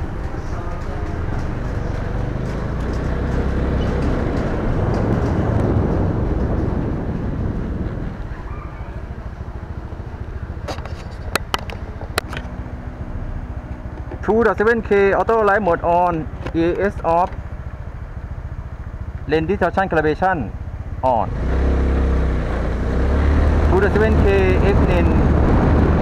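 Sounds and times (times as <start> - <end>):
wind and road rumble: 0.0 - 26.0.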